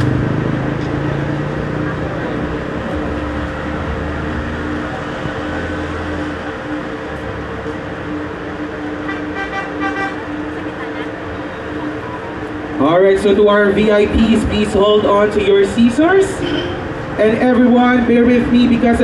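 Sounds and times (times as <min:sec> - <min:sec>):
roadside traffic noise: 0:00.0 - 0:19.0
car horn toot: 0:09.0 - 0:10.3, 0:16.3 - 0:16.8
people talking: 0:10.5 - 0:19.0.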